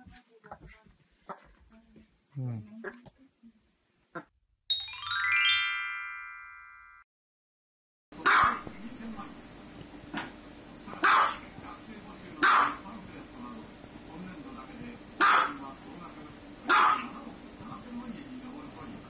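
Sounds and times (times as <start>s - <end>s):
small dog barking: 8.2s - 8.6s, 11.0s - 11.4s, 12.4s - 12.8s, 15.2s - 15.6s, 16.7s - 17.2s.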